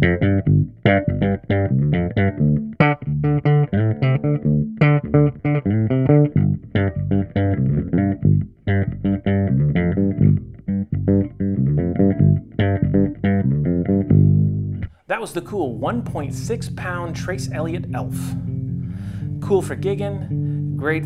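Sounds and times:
electric bass plucked notes: 0.0s - 21.0s.

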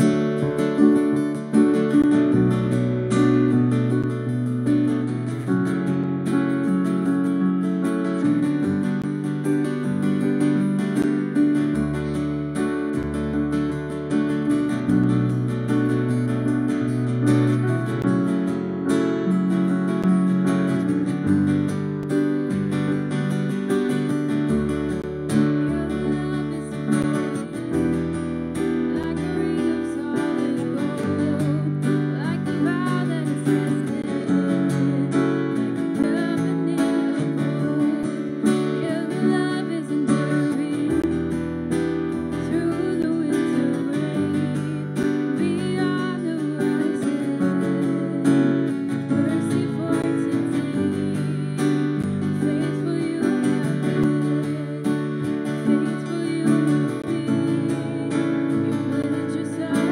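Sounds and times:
digital piano: 0.0s - 59.9s
strummed acoustic guitar: 0.0s - 59.9s.

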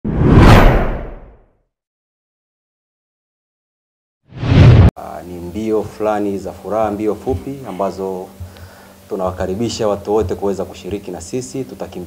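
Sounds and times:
whoosh with deep low end: 0.0s - 1.4s, 4.3s - 4.9s.

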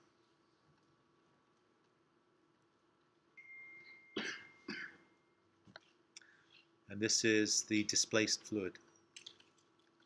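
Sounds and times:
person coughing: 4.2s - 5.1s.

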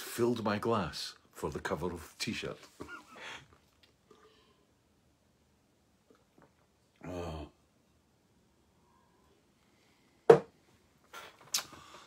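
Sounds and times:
rustling of person moving: 1.5s - 4.2s.

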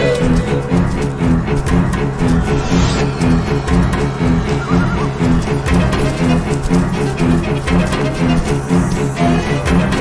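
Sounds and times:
suspenseful orchestral score: 0.0s - 10.0s
low bowed strings: 0.6s - 7.8s
deep bass pulse: 1.8s - 6.8s.

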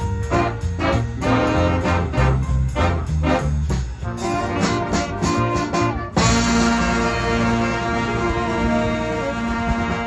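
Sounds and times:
jazz band playing swing: 0.0s - 10.0s.

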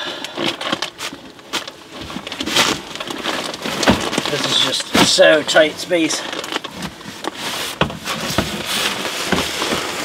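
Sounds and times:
building materials being handled: 0.0s - 10.0s.

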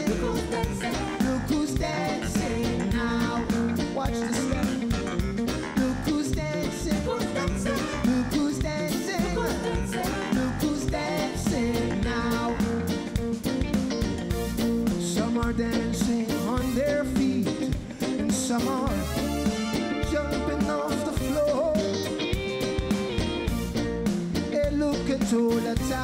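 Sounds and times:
man singing: 0.0s - 13.1s, 15.0s - 22.2s, 24.5s - 26.0s
reggae band playing: 0.0s - 26.0s.

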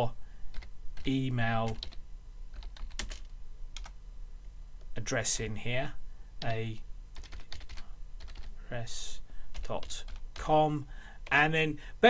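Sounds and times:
keyboard keystrokes: 7.2s - 8.5s.

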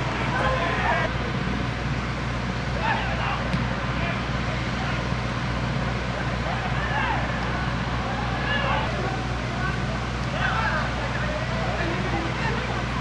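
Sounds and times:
players shouting: 0.0s - 1.4s, 2.6s - 13.0s
steady open-air hum: 0.0s - 13.0s.

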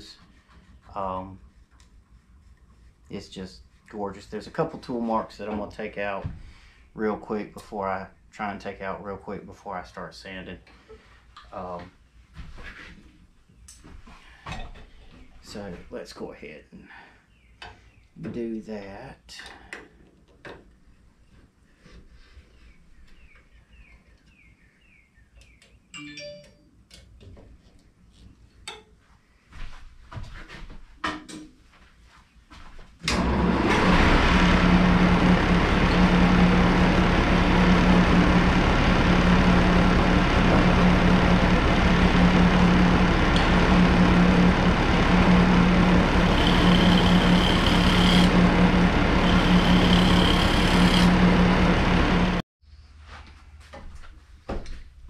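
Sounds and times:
lathe motor humming: 33.1s - 52.4s.

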